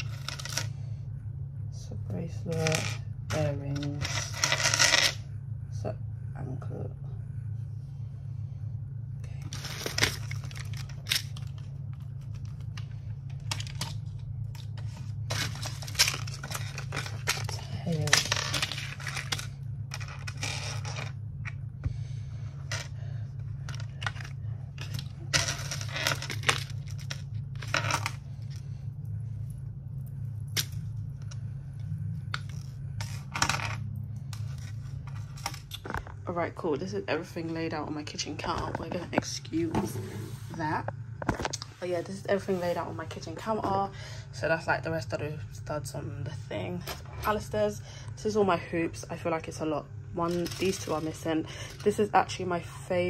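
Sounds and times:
steady low hum: 0.0s - 53.0s
rustling and scraping: 38.4s - 43.8s.

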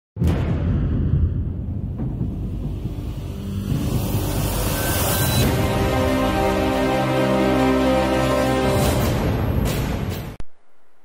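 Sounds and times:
low rumbling: 0.2s - 6.7s
rising whoosh: 0.9s - 7.1s
intro music: 1.5s - 10.4s.

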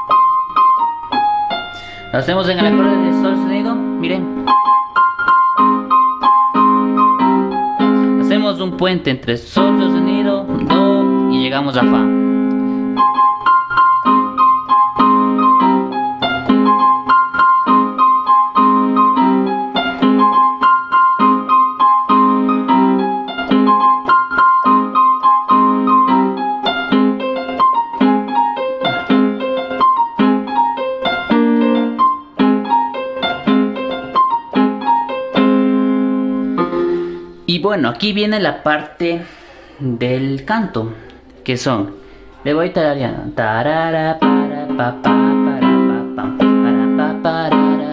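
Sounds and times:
keyboard melody over chords: 0.0s - 38.1s, 41.0s - 47.9s.

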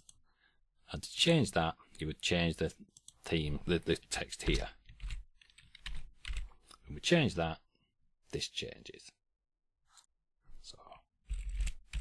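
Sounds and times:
computer keyboard typing: 4.4s - 6.5s, 11.3s - 12.0s.

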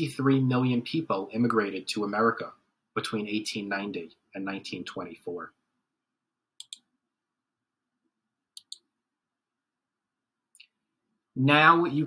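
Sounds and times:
computer mouse double clicks: 6.6s - 6.8s.

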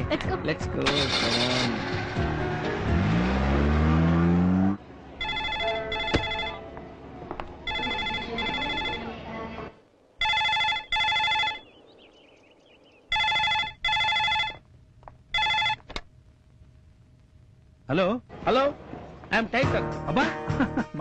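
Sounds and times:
telephone ringing: 5.2s - 6.6s, 7.6s - 9.2s, 10.2s - 11.7s, 13.1s - 14.6s, 15.3s - 15.9s.

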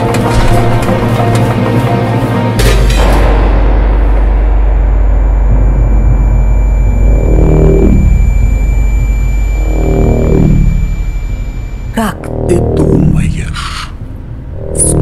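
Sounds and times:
deep cinematic drone: 0.0s - 15.0s
slow swelling tones: 4.5s - 13.2s
thin steady high tone: 5.2s - 12.2s.

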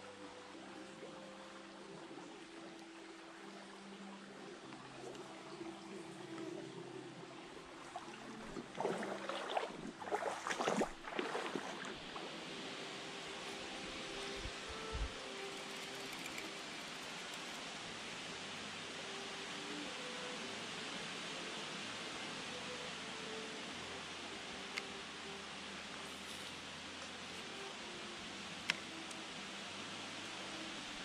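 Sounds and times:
stream running: 0.0s - 31.0s.

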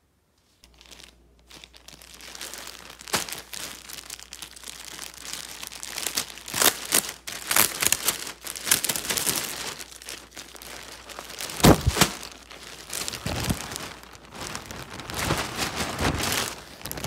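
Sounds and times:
plastic bags crinkling: 0.6s - 17.0s.

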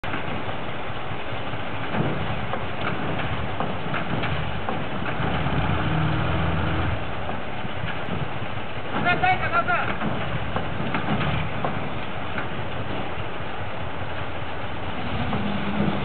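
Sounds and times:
diesel engines idling: 0.0s - 16.0s
short knocks: 1.8s - 13.1s.

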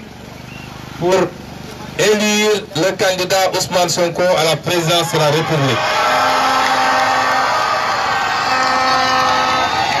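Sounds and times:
crowd cheering: 4.8s - 10.0s
long horn blasts: 6.0s - 10.0s.

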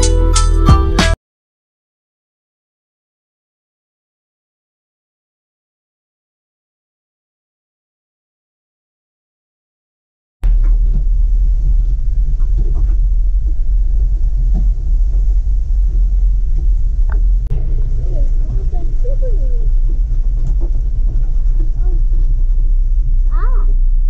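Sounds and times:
vehicle jolting knocks: 10.4s - 24.0s
vehicle rumbling on rough track: 10.4s - 24.0s.

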